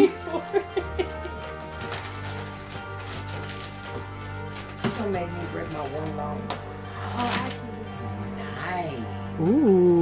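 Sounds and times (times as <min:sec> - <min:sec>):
person laughing: 0:00.0 - 0:01.4
background music: 0:00.0 - 0:10.0.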